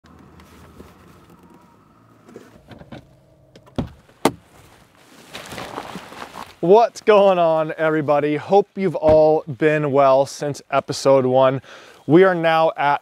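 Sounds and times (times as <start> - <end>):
rising rustle: 0.0 - 10.2.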